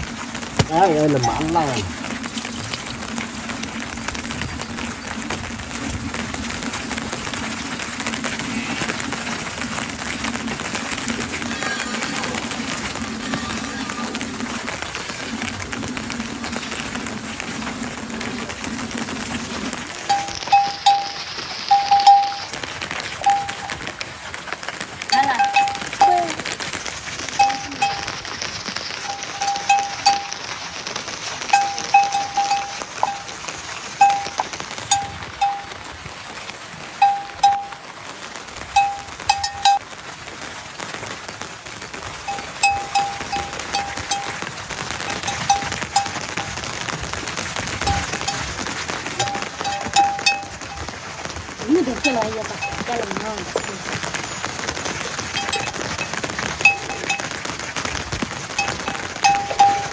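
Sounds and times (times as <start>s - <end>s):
rain patter: 0.0s - 59.9s
livestock neck bell clinking: 20.1s - 22.5s, 23.2s - 23.8s, 25.2s - 26.2s, 27.4s - 28.2s, 29.0s - 30.5s, 31.5s - 33.3s, 34.0s - 35.8s, 37.0s - 37.8s, 38.8s - 39.8s, 42.3s - 44.4s, 45.1s - 46.6s, 47.8s - 48.5s, 49.2s - 50.9s, 52.1s - 52.9s, 55.4s - 57.3s, 58.6s - 59.9s.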